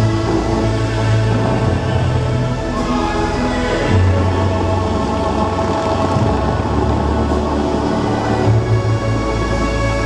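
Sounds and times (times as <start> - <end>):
fountain water jets hissing: 0.0 - 10.0
loud show music with deep chord: 0.0 - 10.0.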